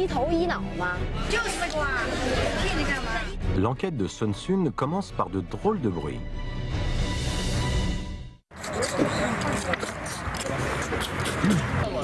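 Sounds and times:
music: 0:00.0 - 0:08.4
people sucking fingers: 0:08.6 - 0:11.8.

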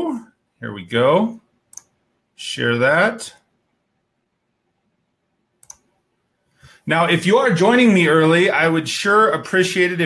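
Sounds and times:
computer mouse clicks: 0:01.7 - 0:02.0, 0:05.6 - 0:05.9.

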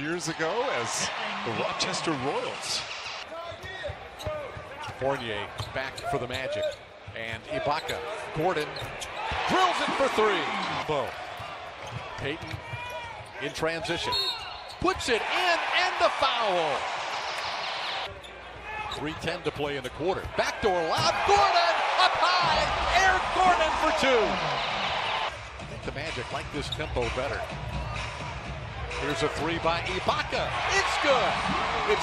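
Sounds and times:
arena crowd noise: 0:00.0 - 0:32.0.

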